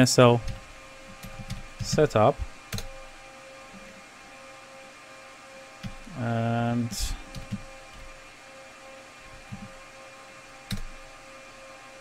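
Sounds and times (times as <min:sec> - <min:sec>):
room noise hum: 0:00.0 - 0:12.0.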